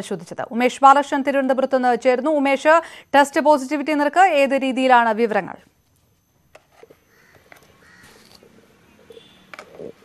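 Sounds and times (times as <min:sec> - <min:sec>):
low background noise: 0:00.0 - 0:10.0
faint bird calls: 0:07.1 - 0:10.0.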